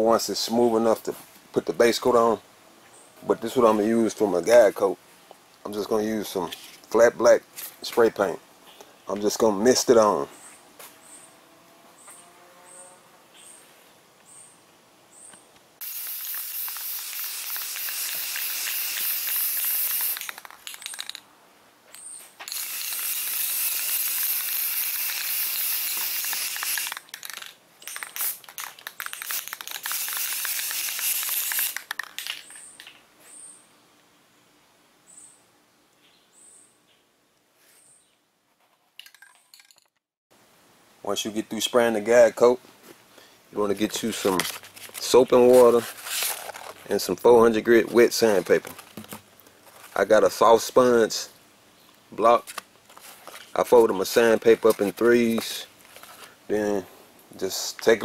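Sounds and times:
spray paint can hissing: 0:15.8 - 0:21.2, 0:22.5 - 0:32.6.

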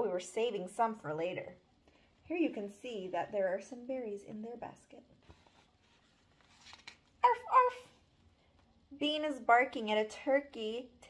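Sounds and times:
paper pages rustling: 0:05.2 - 0:07.2.

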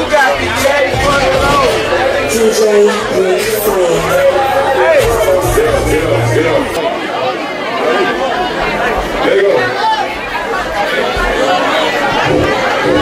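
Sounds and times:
overlapping voices in crowd: 0:09.7 - 0:13.0
low bass thumps: 0:12.2 - 0:13.0.

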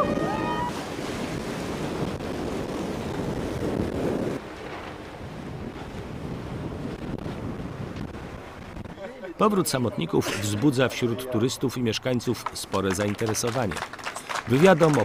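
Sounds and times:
wind buffeting microphone: 0:00.0 - 0:10.1
waves washing: 0:00.0 - 0:15.0.

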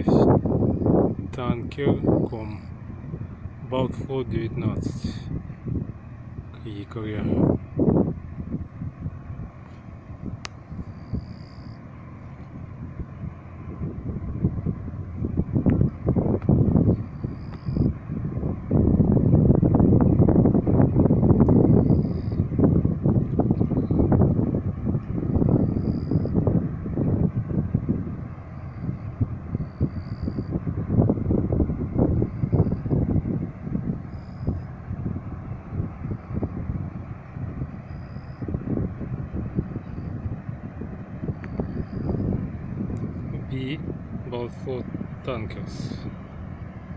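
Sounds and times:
wind buffeting microphone: 0:00.0 - 0:46.9
faint high chirring: 0:08.5 - 0:15.5, 0:17.0 - 0:18.0, 0:21.7 - 0:22.5, 0:25.2 - 0:26.4, 0:28.4 - 0:30.6, 0:34.1 - 0:34.8, 0:37.6 - 0:38.5, 0:39.7 - 0:40.3, 0:41.2 - 0:42.3.

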